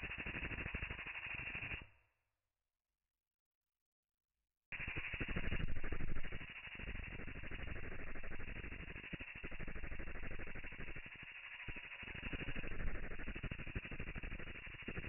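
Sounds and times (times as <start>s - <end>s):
ultrasonic cleaner slowed rattle: 0.1s - 1.7s, 4.8s - 15.0s.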